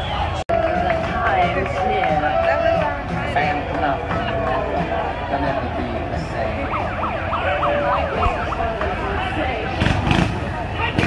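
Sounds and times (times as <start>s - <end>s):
crowd chatter: 0.0s - 11.0s
siren yelping: 6.6s - 9.2s.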